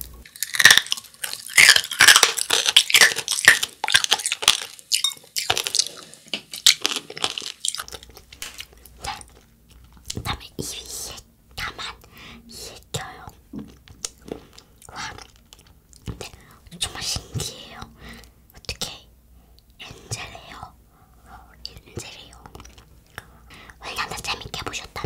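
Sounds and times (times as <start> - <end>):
wet chewing and mouth clicks: 0.2 - 10.3, 13.6 - 16.4, 21.8 - 23.8.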